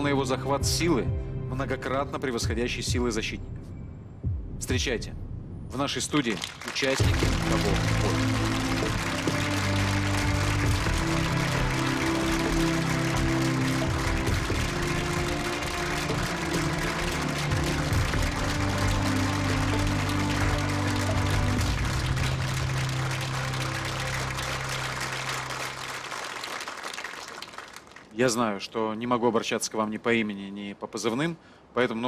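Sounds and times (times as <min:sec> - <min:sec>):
studio audience applauding: 0:06.2 - 0:28.2
music cue: 0:07.0 - 0:26.2.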